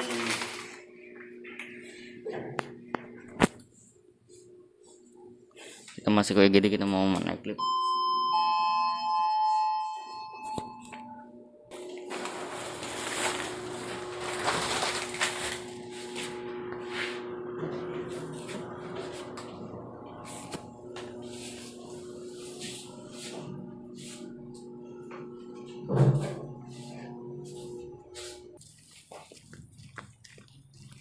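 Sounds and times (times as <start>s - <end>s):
two-tone elevator chime: 7.6s - 11.4s
moving elevator hum and rushing air: 11.4s - 28.6s.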